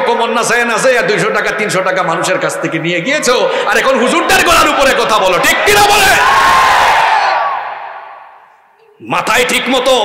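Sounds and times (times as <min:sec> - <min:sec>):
echo in a hall: 0:00.0 - 0:10.0
man shouting through a pa system: 0:04.0 - 0:06.5.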